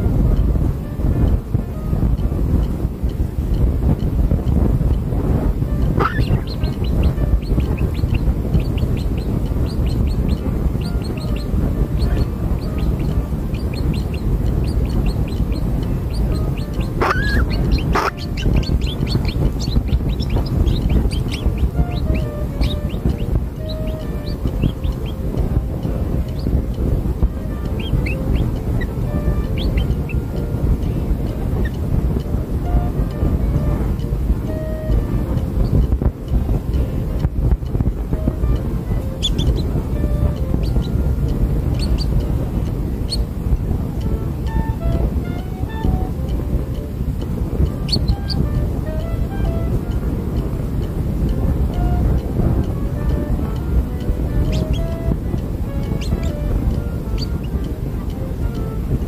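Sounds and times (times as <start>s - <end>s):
low rumbling background: 0.0s - 59.0s
gliding bird call: 5.8s - 30.4s, 38.2s - 41.0s, 41.7s - 42.2s, 47.8s - 50.0s, 53.1s - 57.7s
nestling birds chirping: 5.9s - 25.4s, 26.2s - 26.8s, 27.5s - 30.2s, 39.2s - 39.7s, 40.6s - 41.0s, 41.7s - 42.2s, 43.0s - 43.2s, 47.8s - 49.6s, 54.4s - 55.2s, 55.9s - 57.6s.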